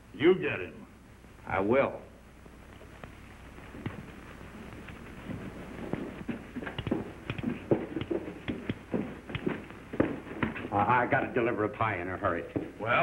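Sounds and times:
footsteps on hard floor: 0:02.8 - 0:10.9, 0:12.5 - 0:12.9.

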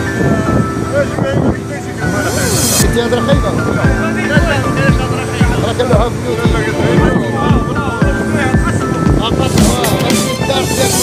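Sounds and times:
music with steady beat: 0:02.0 - 0:11.0.

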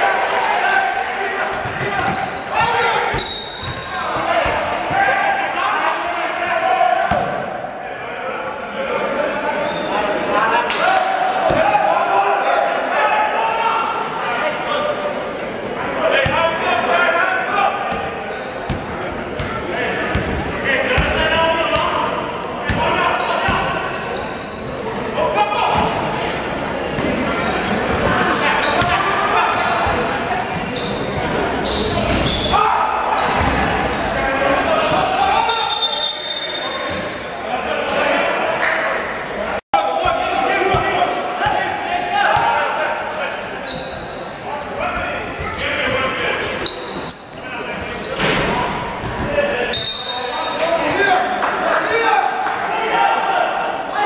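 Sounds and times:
echoing voices in hall: 0:00.0 - 0:54.0
basketball bouncing on wooden court: 0:18.7 - 0:20.4.

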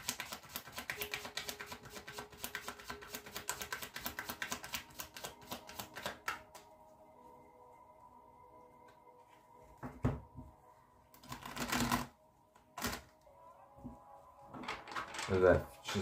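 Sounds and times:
cards riffling: 0:00.0 - 0:06.4
cards flicking: 0:00.0 - 0:06.6.

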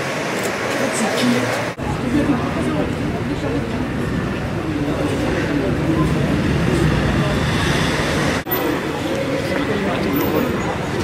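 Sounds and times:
street traffic rumble: 0:00.0 - 0:11.0
murmur of crowd talking: 0:00.4 - 0:11.0.

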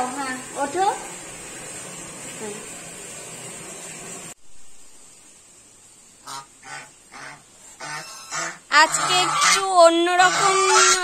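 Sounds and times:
steady hiss: 0:00.0 - 0:10.7
geese honking: 0:06.2 - 0:11.0.

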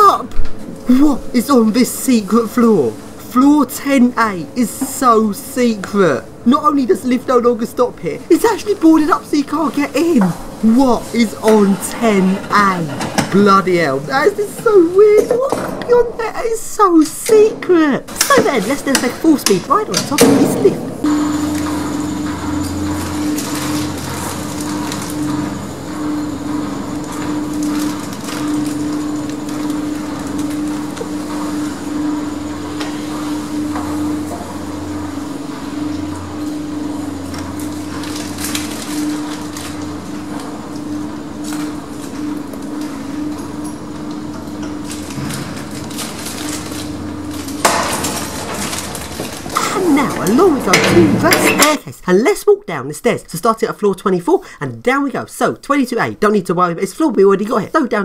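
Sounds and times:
lift car humming: 0:00.0 - 0:51.8.

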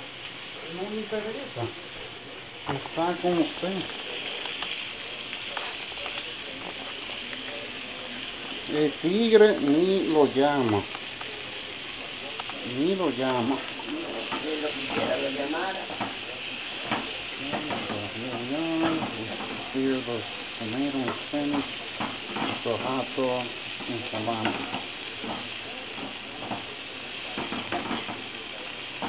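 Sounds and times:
food sizzling in a frying pan: 0:00.0 - 0:29.0
small crackles of oil: 0:02.6 - 0:16.2.

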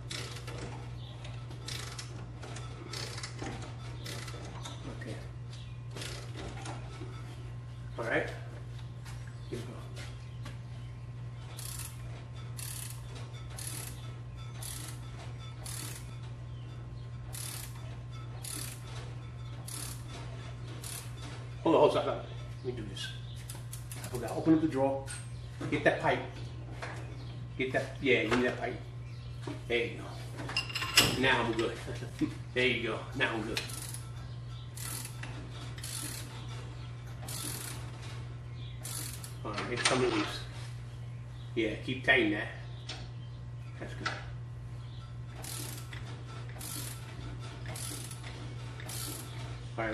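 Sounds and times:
steady low hum: 0:00.0 - 0:49.9
ratchet wrench clicking: 0:01.6 - 0:02.1, 0:11.6 - 0:12.0, 0:12.6 - 0:13.0, 0:13.6 - 0:14.0, 0:14.6 - 0:15.0, 0:15.6 - 0:16.1, 0:17.3 - 0:17.8, 0:18.4 - 0:18.8, 0:19.7 - 0:20.0, 0:20.8 - 0:21.1, 0:33.6 - 0:34.0, 0:34.8 - 0:35.2, 0:35.8 - 0:36.3, 0:37.3 - 0:37.8, 0:38.8 - 0:39.4, 0:45.4 - 0:46.0, 0:46.6 - 0:47.0, 0:47.8 - 0:48.2, 0:48.9 - 0:49.3.

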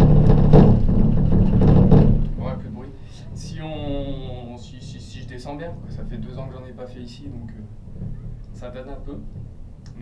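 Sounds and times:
gondola cabin rumbling and rattling: 0:00.0 - 0:10.0.

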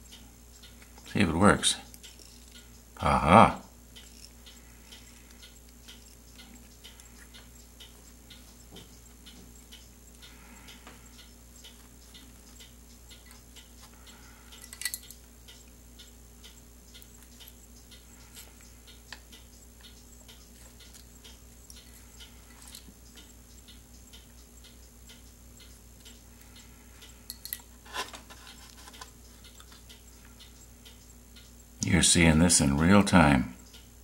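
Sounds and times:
clock ticking: 0:00.0 - 0:27.3, 0:28.4 - 0:34.0
small metal clicks: 0:14.5 - 0:15.8, 0:26.0 - 0:30.0.

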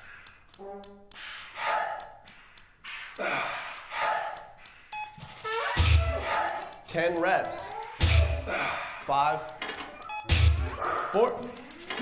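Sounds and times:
faint regular ticking: 0:00.0 - 0:12.0.

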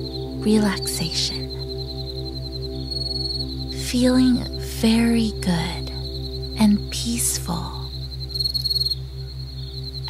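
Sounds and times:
ambient music drone: 0:00.0 - 0:10.0
insect trill: 0:00.0 - 0:10.0.

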